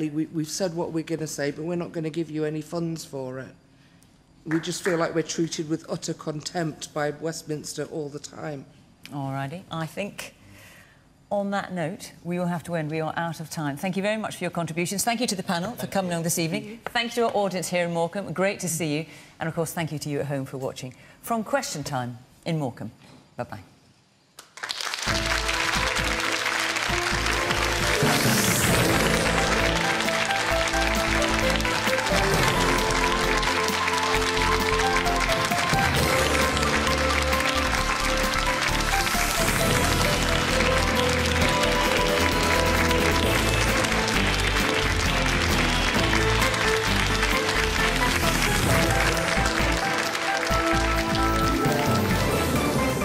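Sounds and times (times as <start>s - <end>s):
audience applause: 24.4s - 53.0s
tv theme music: 25.1s - 53.0s.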